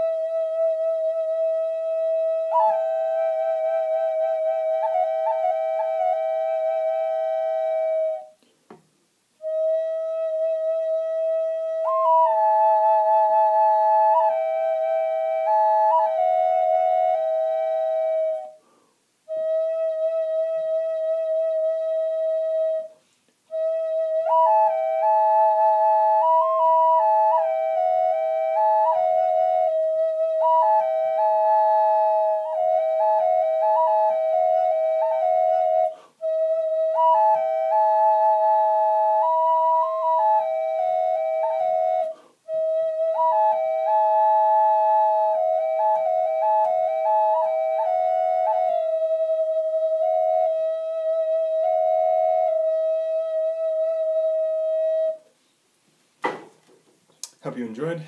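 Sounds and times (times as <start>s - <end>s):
drone flute melody: 0.0s - 8.4s, 9.4s - 18.6s, 19.3s - 55.3s.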